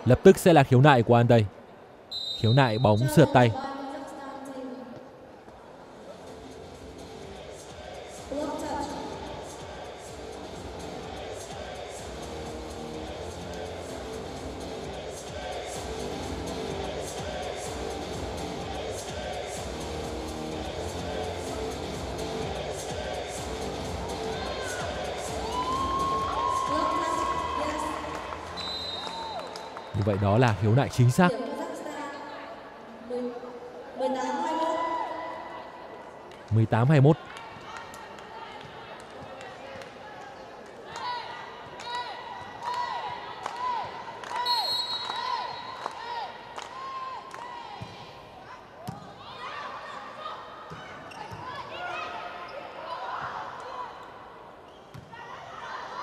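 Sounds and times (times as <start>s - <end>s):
music over loudspeakers: 6.2s - 28.6s
crowd cheering and shouting: 24.0s - 31.2s.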